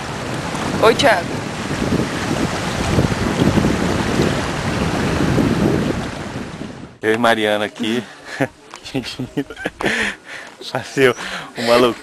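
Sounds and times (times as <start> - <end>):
wind buffeting microphone: 0.0 - 7.0.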